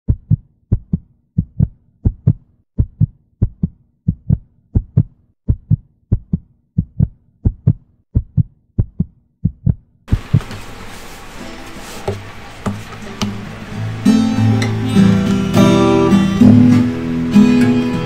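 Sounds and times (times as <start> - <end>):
heartbeat lub-dub thumps: 0.1 - 10.4.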